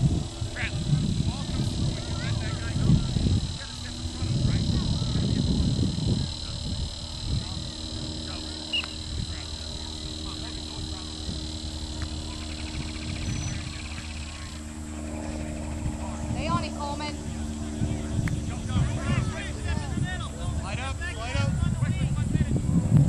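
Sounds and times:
distant indistinct voices: 0.0 - 23.0
people calling out: 0.5 - 15.4.

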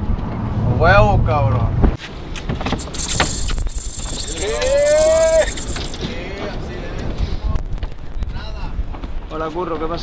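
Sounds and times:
man shouting: 4.4 - 5.5.

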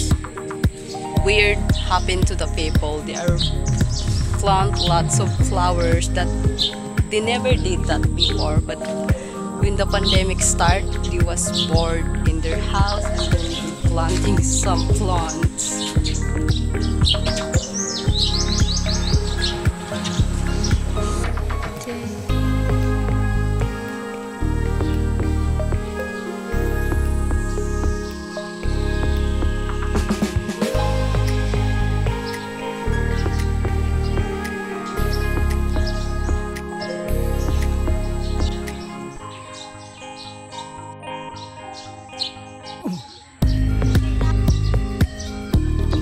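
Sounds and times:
background music with beat: 0.0 - 46.0
birds chirping: 0.0 - 46.0.

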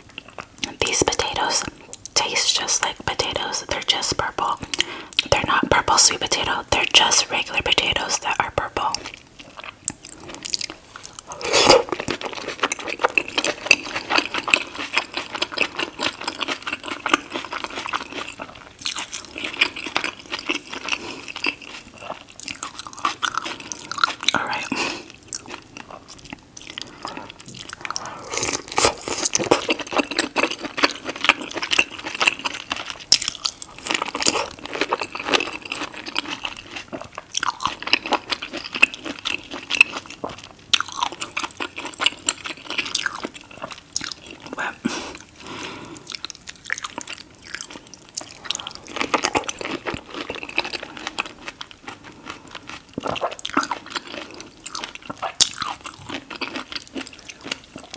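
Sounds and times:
chewing and biting food: 7.8 - 57.9.

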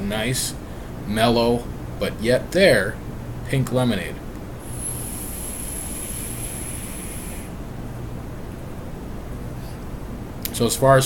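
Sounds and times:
electronic cigarette coil hissing: 4.6 - 7.6.

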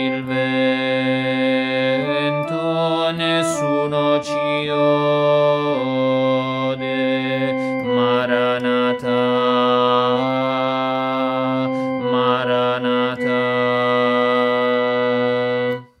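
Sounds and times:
alto voice holding long notes: 0.0 - 16.0
sustained organ-like chords: 0.0 - 16.0.

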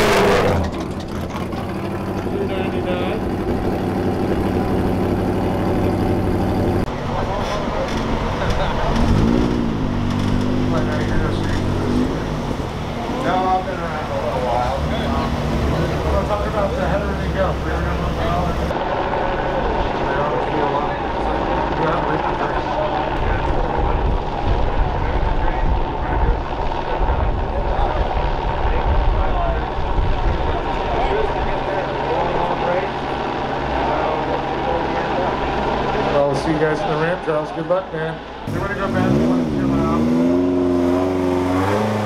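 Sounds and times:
helicopter flying overhead: 0.0 - 40.0
low engine rumble: 0.0 - 42.0.

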